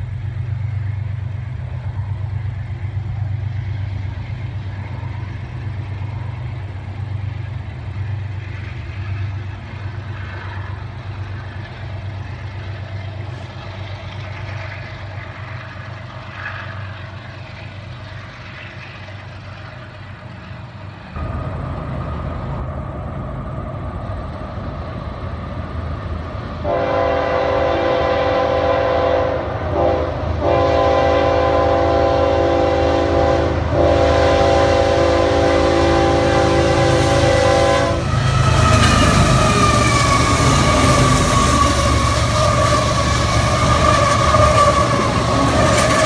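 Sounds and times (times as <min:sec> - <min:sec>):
faint track noise: 0:00.0 - 0:27.6
distant diesel locomotives rumbling: 0:00.0 - 0:46.0
locomotive air horn blasts: 0:26.6 - 0:38.5.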